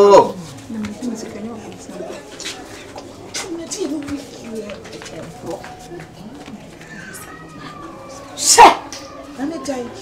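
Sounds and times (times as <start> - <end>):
low voices talking: 0.0 - 10.0
people shouting: 7.5 - 9.3.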